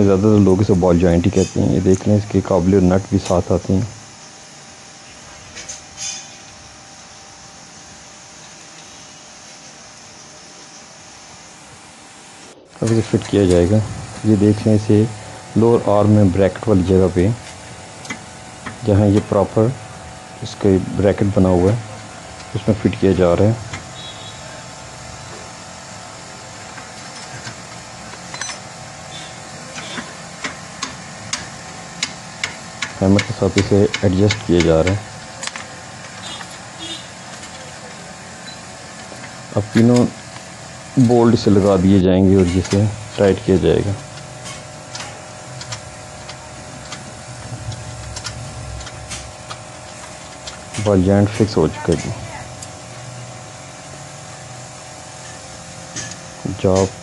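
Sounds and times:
low steady hum: 0.0 - 57.0
steady hiss: 0.0 - 57.0.

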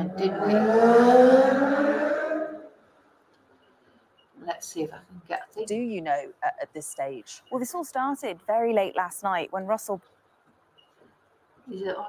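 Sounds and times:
woman humming rising pitch: 0.0 - 2.7.

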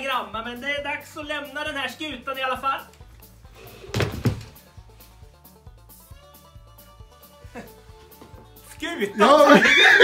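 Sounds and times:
background music with steady beat: 0.0 - 10.0
person landing on laminate floor: 3.9 - 4.6.

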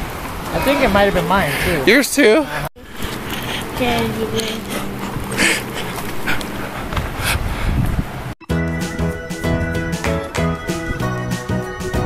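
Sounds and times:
music with steady beat: 8.4 - 12.0.

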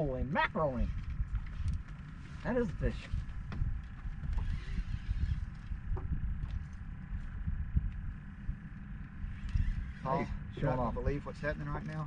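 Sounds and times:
wind and water rumble: 0.0 - 12.0.

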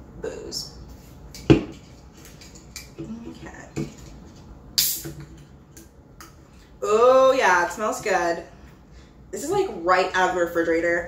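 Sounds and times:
woman talking: 0.2 - 0.8, 6.8 - 8.5, 9.3 - 11.0.

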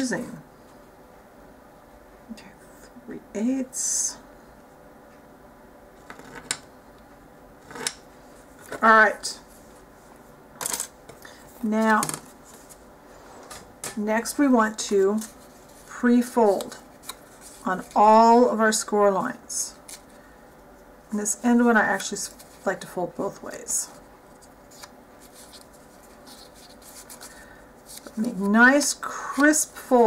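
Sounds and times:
paper crinkling and rustling: 23.9 - 29.9.

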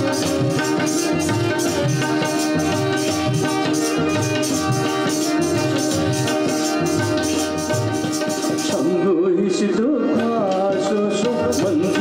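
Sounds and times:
tabla strokes: 0.0 - 9.1, 10.2 - 12.0
harmonium: 0.0 - 12.0
person singing: 8.7 - 12.0.

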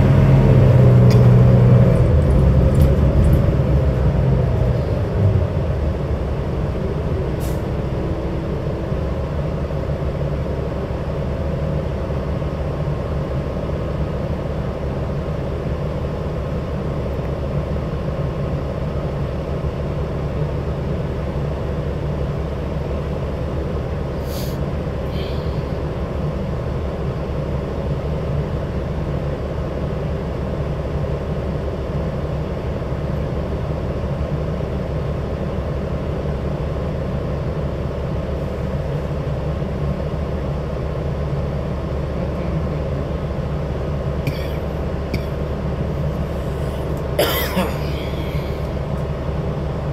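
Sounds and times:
bus cabin low rumble: 0.0 - 49.9.

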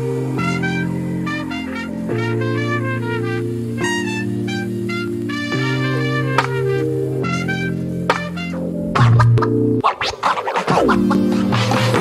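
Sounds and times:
sustained music chords: 0.0 - 12.0.

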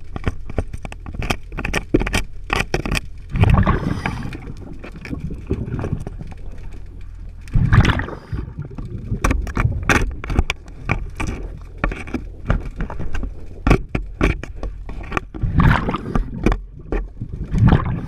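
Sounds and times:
low underwater rumble: 2.3 - 18.0
diver's exhaled bubbles rushing: 3.3 - 6.5, 7.5 - 9.9, 15.4 - 18.0.

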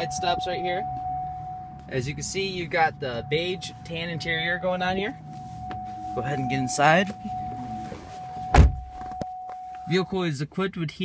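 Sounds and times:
heavy door thump: 8.5 - 8.9.

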